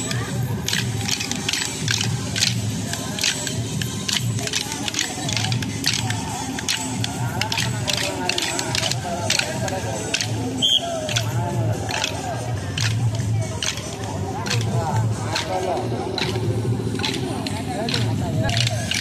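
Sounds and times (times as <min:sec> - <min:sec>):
sticks clacking together: 0:00.0 - 0:19.0.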